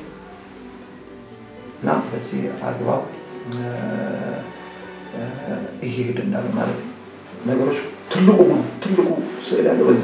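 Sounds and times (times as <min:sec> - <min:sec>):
background music: 0:00.0 - 0:10.0
man speaking: 0:01.8 - 0:10.0.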